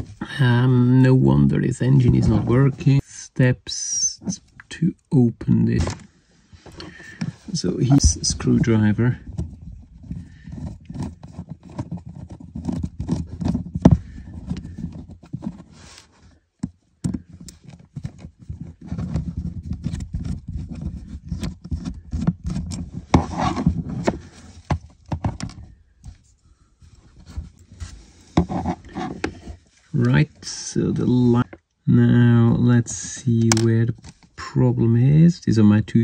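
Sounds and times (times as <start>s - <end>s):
screwdriver scraping plastic model: 6.8s - 16.3s, 17.0s - 26.2s, 27.2s - 31.6s.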